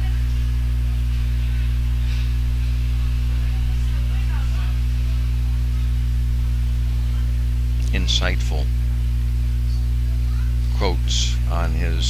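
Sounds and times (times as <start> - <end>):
loud low electrical hum: 0.0 - 12.0.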